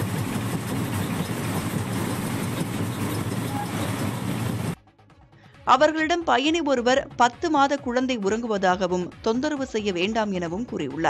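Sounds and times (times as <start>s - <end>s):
train running rumble: 0.0s - 4.8s.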